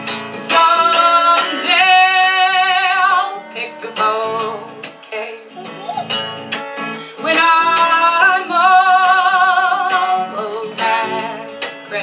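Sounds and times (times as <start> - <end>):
strummed acoustic guitar: 0.0 - 12.0
woman singing with vibrato: 0.4 - 5.6, 7.2 - 12.0.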